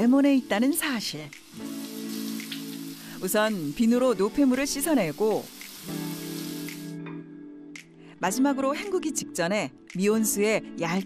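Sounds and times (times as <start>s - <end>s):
background music with held chord: 0.0s - 11.0s
tap water running into sink: 1.0s - 6.9s.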